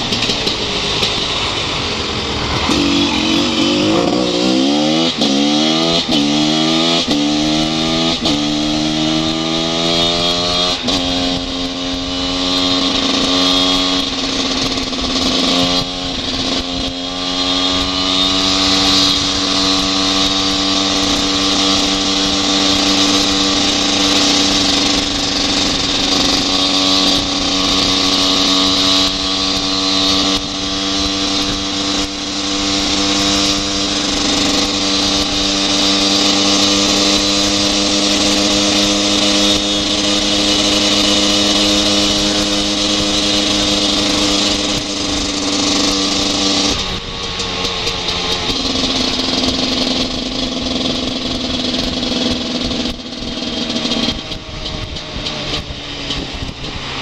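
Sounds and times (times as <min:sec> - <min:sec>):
motorcycle engine accelerating: 0:00.0 - 0:57.0
wind rushing over microphone: 0:00.0 - 0:57.0.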